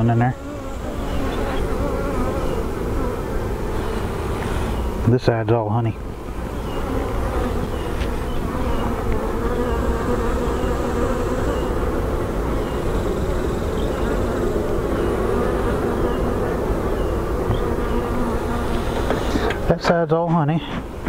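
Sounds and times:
honeybees buzzing: 0.0s - 21.0s.

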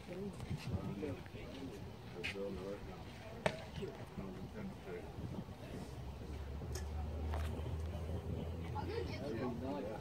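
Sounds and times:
spectators talking: 0.0s - 10.0s.

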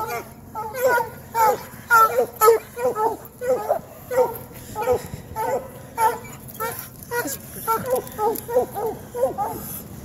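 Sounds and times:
hounds whining and crying: 0.0s - 10.0s.

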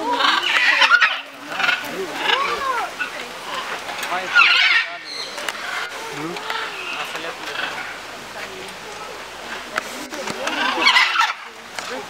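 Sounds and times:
macaws squawking: 0.0s - 12.0s.

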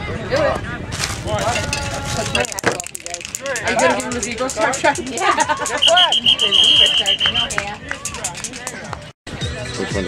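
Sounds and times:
voices talking and calling out: 0.0s - 10.0s
drawn-out call: 5.8s - 7.6s.

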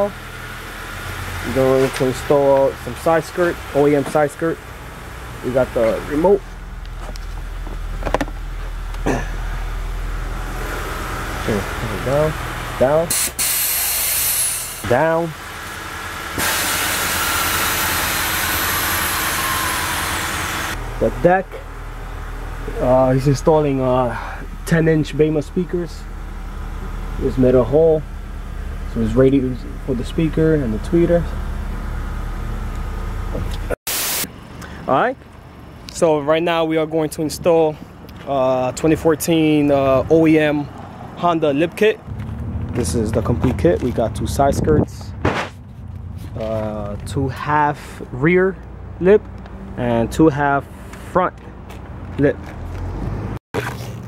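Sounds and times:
steady low rumble: 1.5s - 15.7s, 20.7s - 52.3s
man speaking: 5.4s - 6.4s, 22.7s - 26.0s, 27.2s - 28.0s, 28.9s - 31.4s, 42.8s - 45.1s, 46.4s - 49.2s
air suspension hissing: 12.5s - 14.9s.

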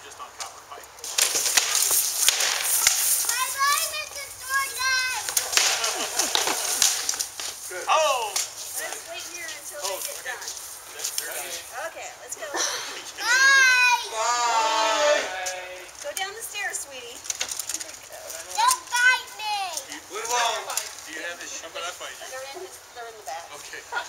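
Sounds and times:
high-pitched shouts: 3.1s - 5.4s, 13.1s - 15.9s, 18.6s - 19.9s.

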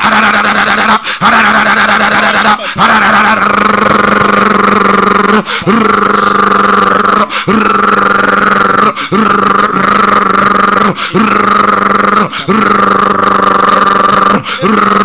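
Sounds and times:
preacher chanting through pa: 0.0s - 15.0s.

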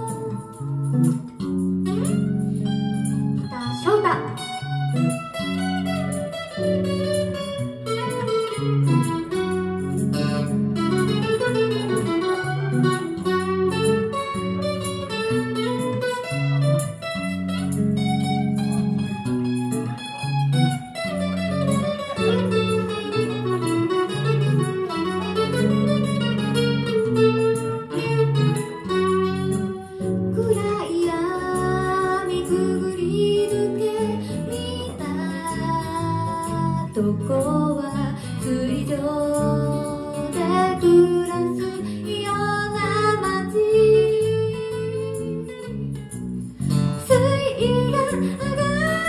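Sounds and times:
bass line: 0.0s - 49.0s
electric and acoustic guitars: 0.0s - 49.0s.

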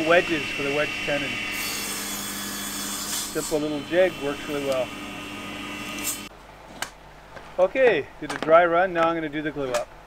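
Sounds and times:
table saw running: 0.0s - 6.3s.

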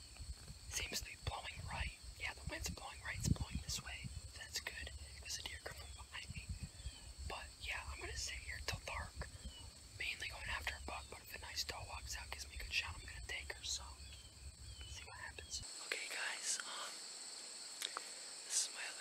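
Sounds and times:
high-pitched insect trill: 0.0s - 19.0s
person whispering: 0.7s - 6.5s, 7.3s - 9.3s, 10.0s - 14.1s, 14.8s - 17.0s, 17.8s - 19.0s.

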